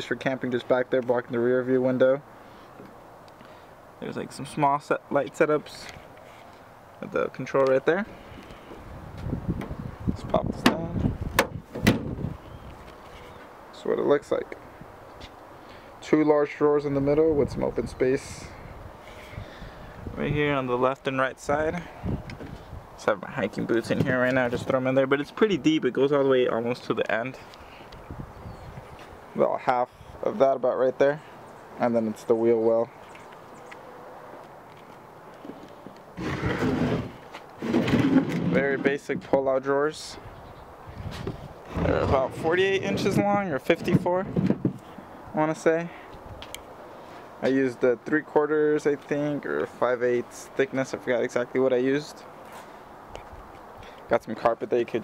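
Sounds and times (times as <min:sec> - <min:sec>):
light rustling: 0:05.3 - 0:06.7
microphone handling rumble: 0:08.8 - 0:12.9, 0:21.4 - 0:22.9, 0:36.2 - 0:39.4, 0:40.2 - 0:45.1
wooden drawer sliding open: 0:36.2 - 0:38.6.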